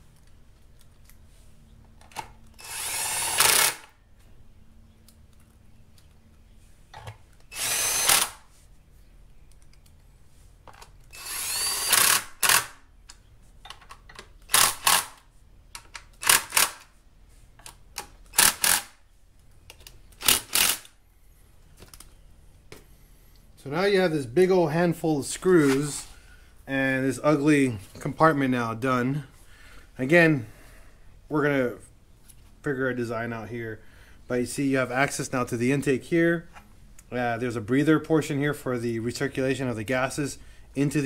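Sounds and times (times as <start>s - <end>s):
cordless drill whirring: 2.6s - 3.9s, 7.5s - 8.5s, 11.1s - 12.8s.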